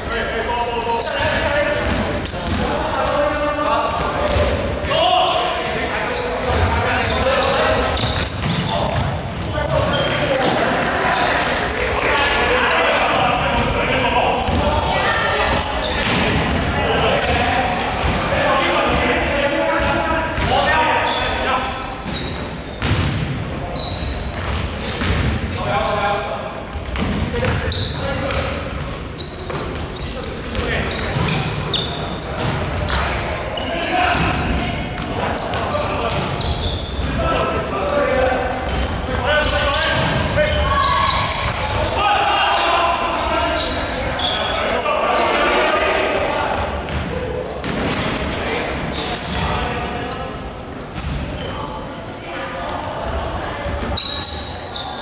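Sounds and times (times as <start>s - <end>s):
players calling out: 0.0s - 55.0s
basketball bouncing on wooden court: 1.7s - 2.9s, 3.9s - 5.0s, 6.4s - 7.3s, 7.9s - 10.9s, 17.8s - 18.2s, 19.8s - 20.6s, 22.0s - 23.4s, 24.4s - 25.6s, 26.7s - 29.9s, 30.5s - 33.0s, 34.1s - 35.2s, 38.4s - 41.7s.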